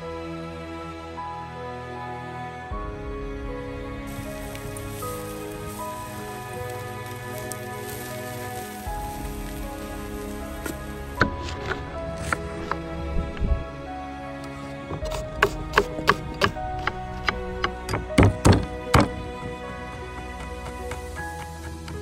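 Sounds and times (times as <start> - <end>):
background music: 0.0 - 22.0
meat sizzling on a grill: 4.1 - 11.2.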